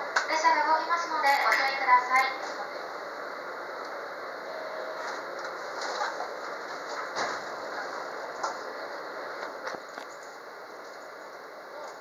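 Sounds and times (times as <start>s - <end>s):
train cabin noise: 0.0s - 12.0s.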